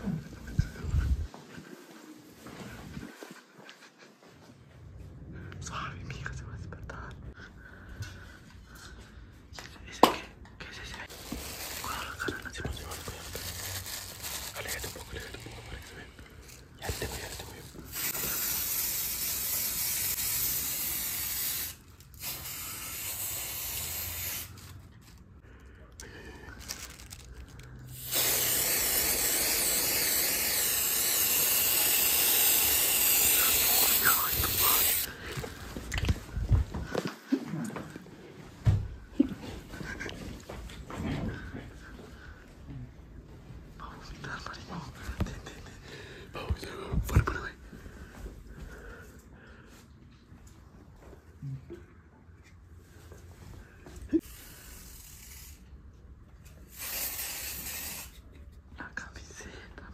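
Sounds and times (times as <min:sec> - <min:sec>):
aerosol spray can hissing: 0:17.8 - 0:24.7, 0:27.9 - 0:35.1, 0:54.2 - 0:55.7, 0:56.6 - 0:58.2.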